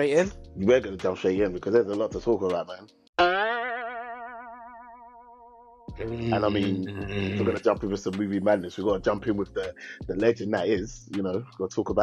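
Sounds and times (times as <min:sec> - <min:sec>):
twangy boing sound effect: 0:03.2 - 0:05.2.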